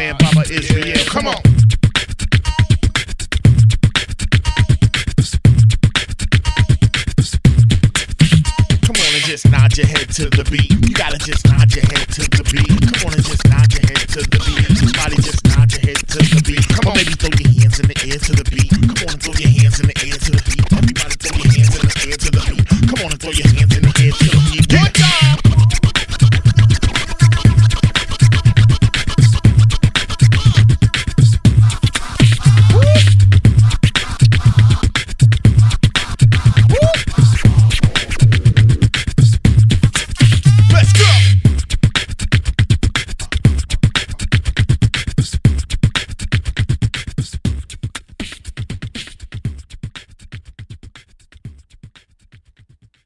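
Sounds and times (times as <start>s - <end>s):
turntable scratch: 0.0s - 49.4s
hip-hop beat with bassline: 0.0s - 49.8s.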